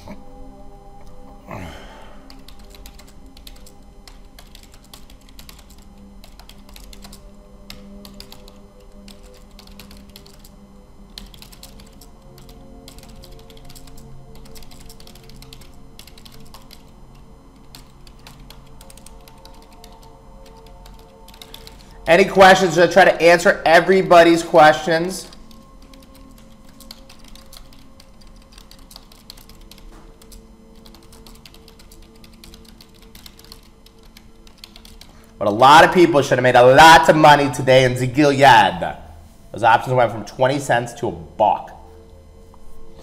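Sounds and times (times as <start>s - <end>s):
quiet background music: 0.0s - 43.0s
computer keyboard typing: 2.2s - 17.0s, 17.6s - 22.4s, 24.7s - 35.3s.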